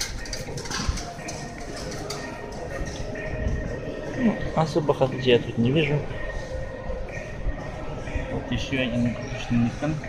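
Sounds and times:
shop background noise: 0.0s - 10.0s.

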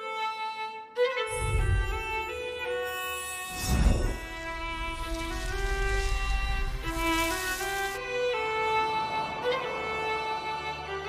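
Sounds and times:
violin melody: 0.0s - 11.0s
low rumble: 1.3s - 2.4s, 3.6s - 8.6s.

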